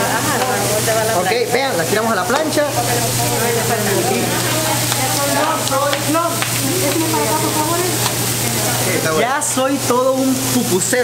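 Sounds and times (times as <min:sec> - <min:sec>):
food sizzling on a griddle: 0:00.0 - 0:11.0
voices in background: 0:00.0 - 0:11.0.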